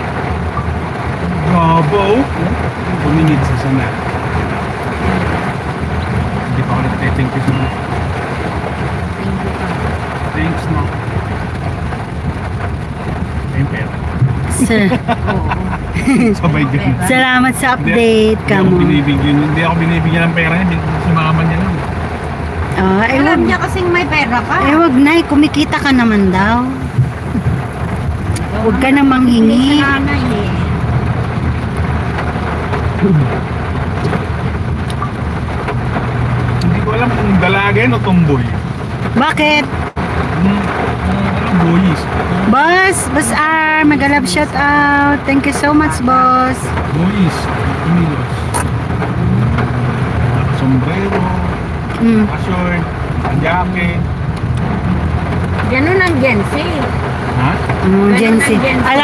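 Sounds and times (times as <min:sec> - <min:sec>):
rain falling: 0:00.0 - 0:59.0
vehicle engine idling: 0:00.0 - 0:59.0.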